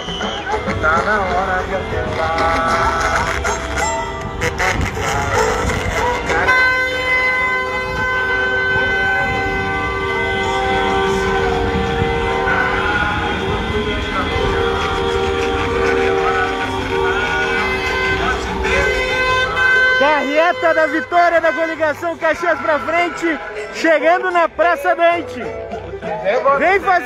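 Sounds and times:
car horns blaring: 0.0s - 27.0s
voices: 0.0s - 27.0s.

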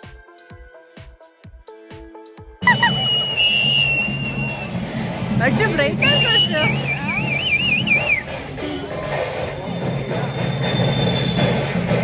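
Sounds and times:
dance music with steady beat: 0.0s - 8.6s
loud finger whistle: 2.6s - 4.8s, 6.0s - 8.4s, 10.2s - 12.0s
street crowd noise: 2.6s - 12.0s.

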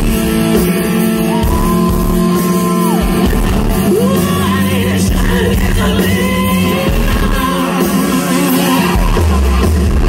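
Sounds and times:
man singing: 0.0s - 9.9s
bass: 0.0s - 10.0s
electric guitar: 0.0s - 10.0s.

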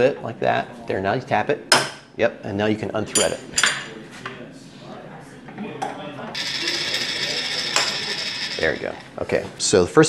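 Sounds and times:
metal-on-metal rattle: 6.4s - 9.2s.

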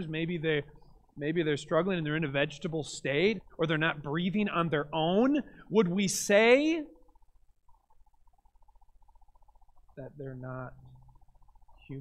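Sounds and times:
faint low hum: 0.0s - 12.0s
rapidly pulsing faint tone: 0.0s - 12.0s.

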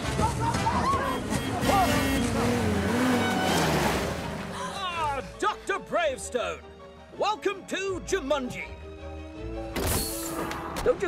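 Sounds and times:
off-road vehicle engine running: 0.0s - 5.4s.

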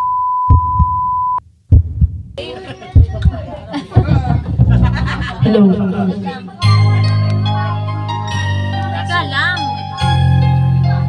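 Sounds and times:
high electronic beep tone: 0.0s - 1.4s
low thuds: 1.7s - 2.4s, 3.0s - 6.0s
people talking: 2.4s - 8.1s.

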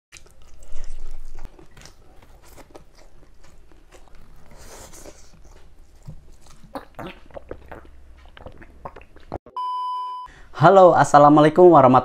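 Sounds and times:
person chewing food: 0.1s - 9.4s
mouth clicks: 6.5s - 9.4s.

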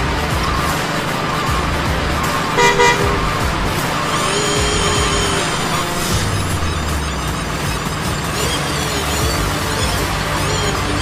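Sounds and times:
background music: 0.0s - 11.0s
truck horn toots: 2.2s - 7.2s.

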